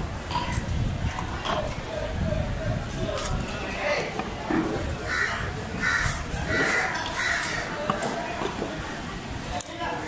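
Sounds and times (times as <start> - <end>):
crow cawing: 5.1 - 7.7.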